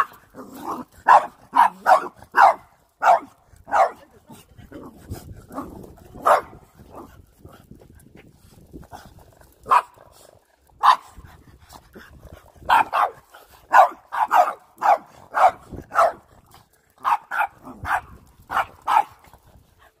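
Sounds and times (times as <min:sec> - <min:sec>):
dogs barking: 0:01.0 - 0:04.0, 0:06.2 - 0:06.6, 0:09.7 - 0:10.0, 0:10.8 - 0:11.1, 0:12.7 - 0:16.3, 0:17.0 - 0:19.2.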